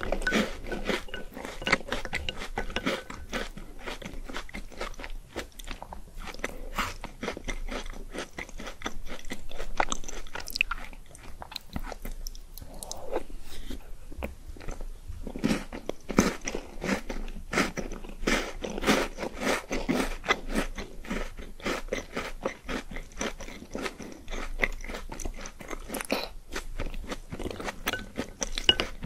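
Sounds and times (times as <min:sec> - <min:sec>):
crunchy chewing: 0:00.0 - 0:13.8, 0:14.6 - 0:29.0.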